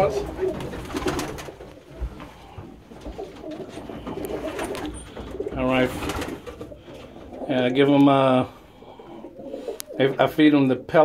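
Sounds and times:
pigeons cooing: 0.0 - 10.2.

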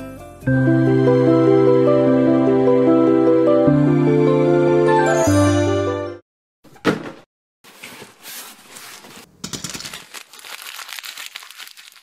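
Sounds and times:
small tablets spilling and clattering: 9.6 - 12.0.

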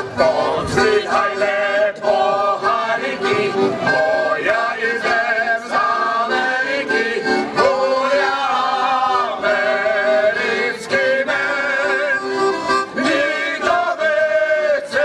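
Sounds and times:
group of men singing: 0.0 - 15.0
piano accordion: 0.0 - 15.0.

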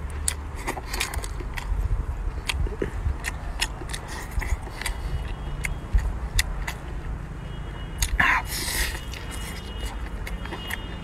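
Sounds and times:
steady low rumble: 0.0 - 7.3.

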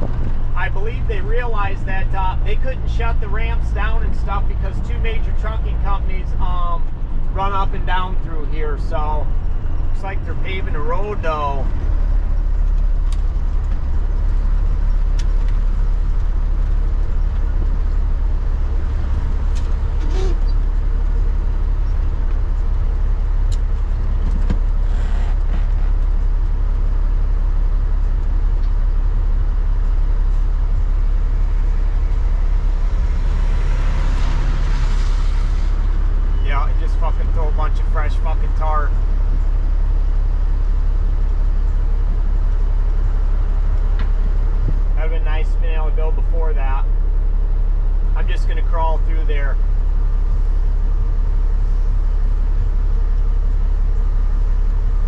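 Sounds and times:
diesel truck engine droning: 0.0 - 55.0.

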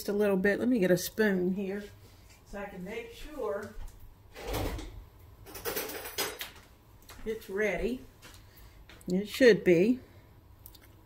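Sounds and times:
utensils clattering: 5.4 - 6.6.

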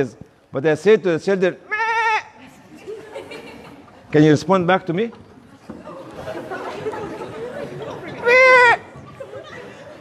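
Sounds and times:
man imitating animal cry: 1.7 - 2.4, 8.2 - 8.9
audience murmur: 5.3 - 10.0.

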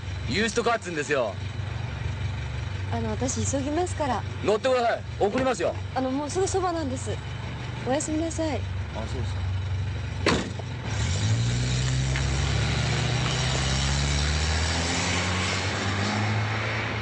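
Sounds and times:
small car engine pulling away: 8.9 - 17.0
sharp knock: 10.2 - 10.6.

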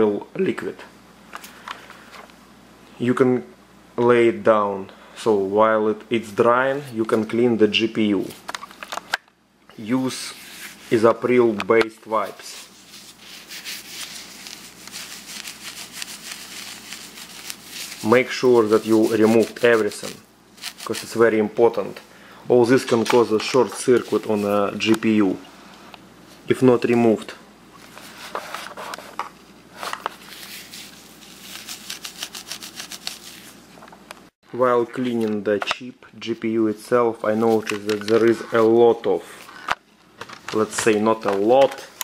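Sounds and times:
wipe scrubbing a chip: 12.4 - 21.3, 30.2 - 33.6.

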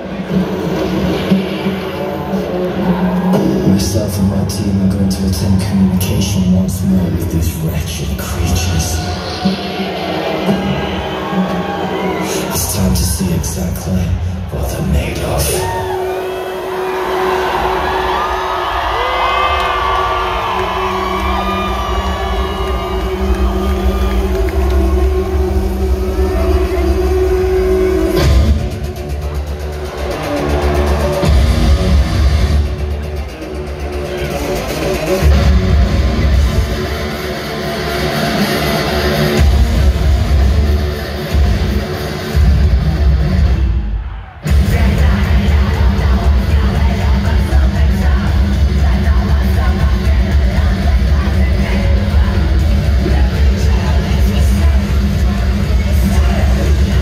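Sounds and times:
crowd cheering and screaming: 0.0 - 7.3, 7.9 - 57.0
heavy bass and drums: 16.8 - 57.0.

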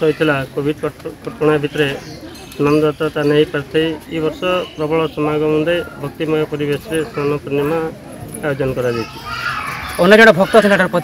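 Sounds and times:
man speaking into a microphone: 10.0 - 11.0.

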